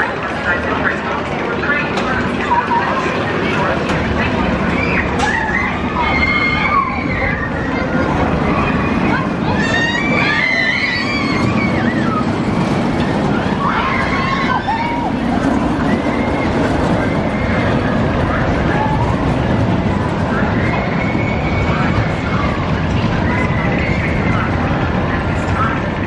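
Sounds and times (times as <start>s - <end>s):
roller coaster wheels rumbling: 0.0s - 26.0s
riders shouting and screaming: 4.5s - 26.0s.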